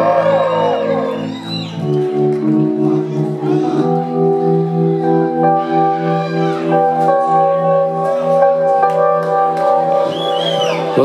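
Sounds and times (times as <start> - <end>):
held low keyboard notes: 0.0 - 11.0.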